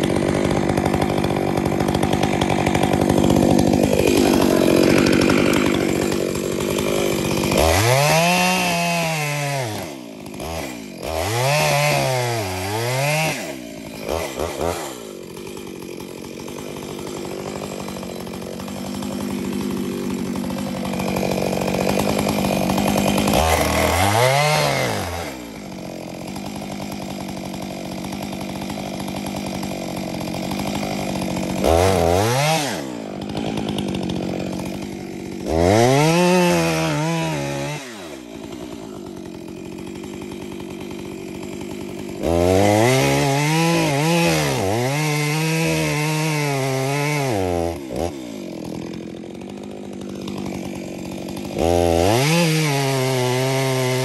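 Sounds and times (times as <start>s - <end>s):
chainsaw cutting tree trunk: 0.0s - 54.0s.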